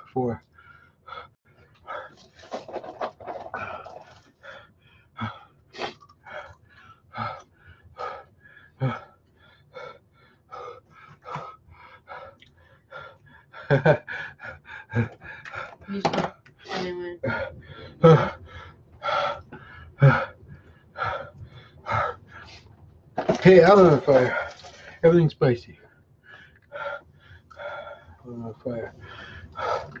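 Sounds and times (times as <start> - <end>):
man panting hard: 6.3 - 15.9, 17.3 - 22.7, 26.2 - 30.0.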